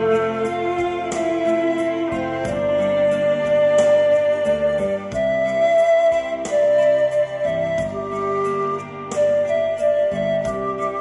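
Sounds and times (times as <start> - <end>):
instrumental music through speakers: 0.0 - 11.0.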